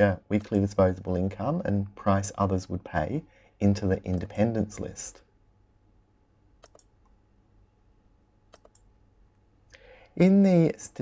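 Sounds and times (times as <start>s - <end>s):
computer mouse clicks: 6.6s - 7.2s, 8.5s - 8.9s.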